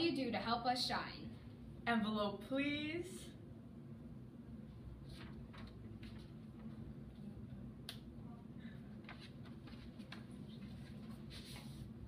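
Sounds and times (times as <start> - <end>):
paper drawn from envelope: 9.7 - 12.0.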